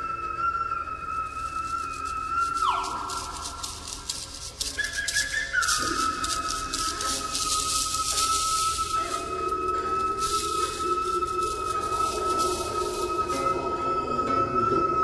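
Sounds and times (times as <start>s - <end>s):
high pure whistle tone: 0.0s - 15.0s
rapid rattling: 2.1s - 13.4s.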